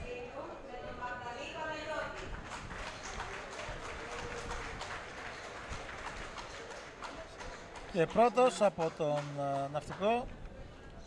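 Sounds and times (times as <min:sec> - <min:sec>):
crowd applause: 0:02.1 - 0:10.2.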